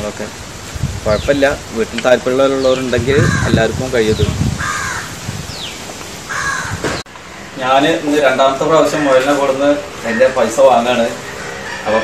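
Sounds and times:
outdoor background noise: 0:00.0 - 0:12.0
crow cawing: 0:03.2 - 0:03.6, 0:04.6 - 0:05.2, 0:06.3 - 0:07.6, 0:08.7 - 0:12.0.

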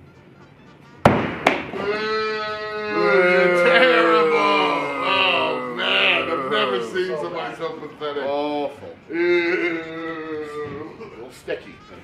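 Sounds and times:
axe striking wooden board: 0:01.1 - 0:01.8
men's drawn-out exclamations: 0:01.8 - 0:07.8, 0:09.1 - 0:11.0.

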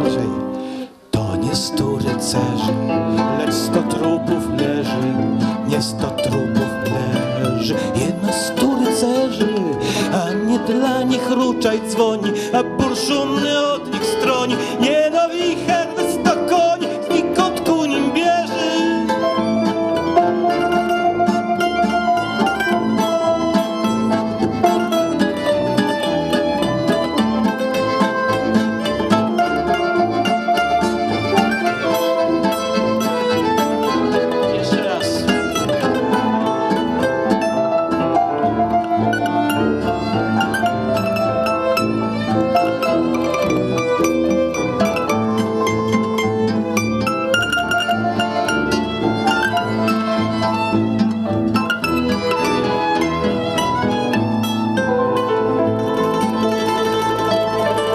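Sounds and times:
accordion: 0:00.0 - 0:57.9
guitar: 0:00.0 - 0:57.9
piano: 0:00.0 - 0:57.9
violin: 0:00.0 - 0:57.9.

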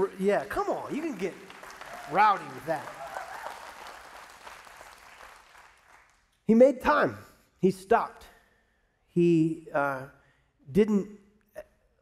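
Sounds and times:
congregation applauding: 0:00.0 - 0:06.3.

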